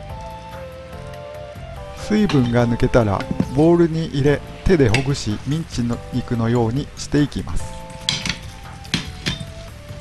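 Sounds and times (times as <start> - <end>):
fingers clinking metal bowl: 1.9 - 3.8, 4.8 - 5.6, 7.8 - 9.7.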